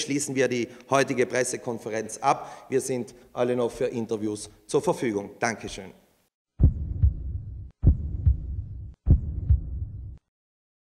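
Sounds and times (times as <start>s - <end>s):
deep low thumps in pairs: 6.6s - 10.2s.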